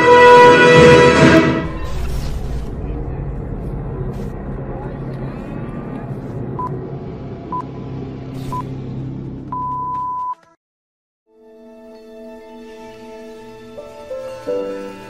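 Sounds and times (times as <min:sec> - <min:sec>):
low rumble: 0:00.7 - 0:09.6.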